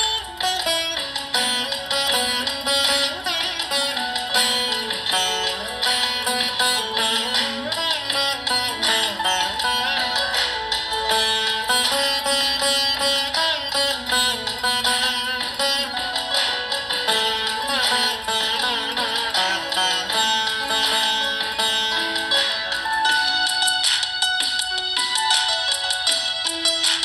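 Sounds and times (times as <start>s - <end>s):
veena melody with pitch bends: 0.0s - 27.0s.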